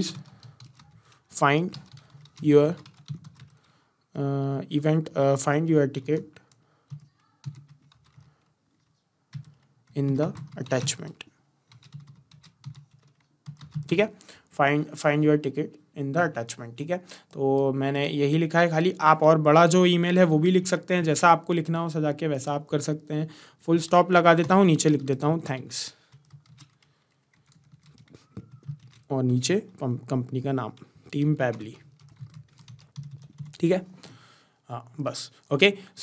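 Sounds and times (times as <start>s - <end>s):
computer keyboard typing: 0.0s - 3.7s, 6.3s - 11.1s, 11.7s - 14.1s, 24.2s - 25.3s, 26.0s - 29.8s, 30.6s - 33.7s.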